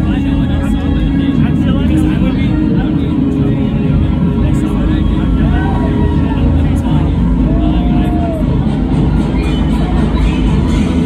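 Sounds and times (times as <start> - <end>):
crowd yelling and cheering: 0.0 - 11.0
sound system low rumble: 0.0 - 11.0.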